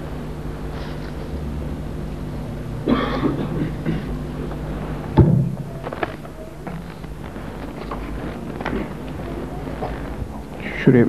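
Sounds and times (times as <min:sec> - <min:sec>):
low electrical hum: 0:00.0 - 0:11.0
crowd shuffles and clicks: 0:05.8 - 0:10.6.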